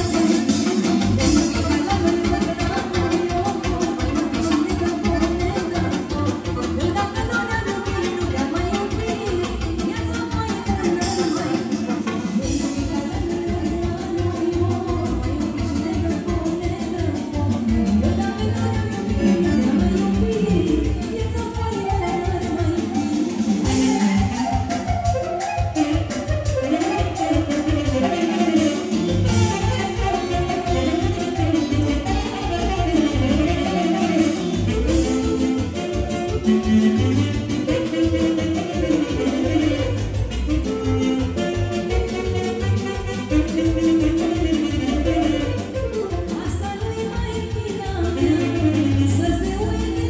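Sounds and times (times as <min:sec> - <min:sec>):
live band playing folk dance music: 0:00.0 - 0:50.0.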